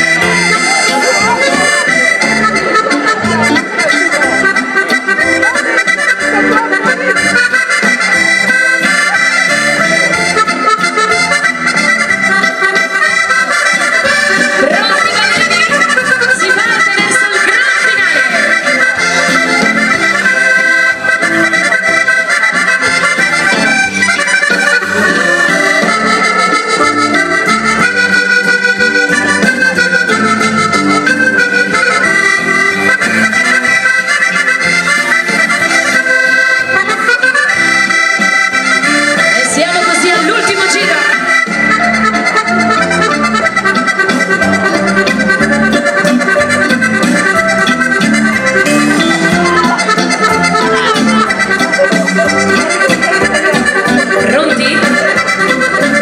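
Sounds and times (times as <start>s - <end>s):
accordion dance-band music: 0.0s - 56.0s.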